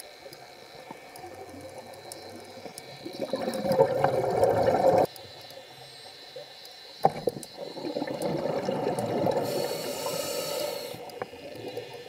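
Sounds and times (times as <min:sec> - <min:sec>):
diver's exhaled bubbles underwater: 0:01.2 - 0:05.1, 0:07.1 - 0:10.2.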